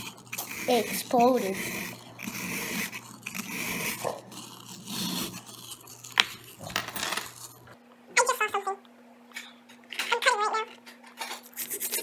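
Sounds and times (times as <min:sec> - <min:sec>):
screwdriver scraping plaster: 0:00.0 - 0:07.6.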